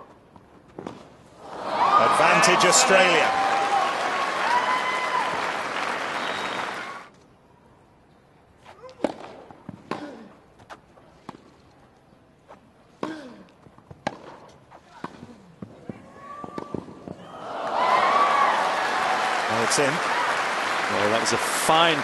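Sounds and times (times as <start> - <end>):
crowd cheering and applauding: 1.4 - 7.1, 17.3 - 22.0.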